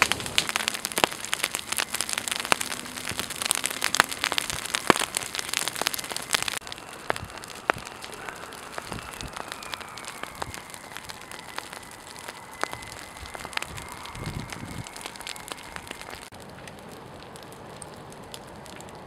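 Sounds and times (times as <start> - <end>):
fire crackling and popping: 0.0 - 19.0.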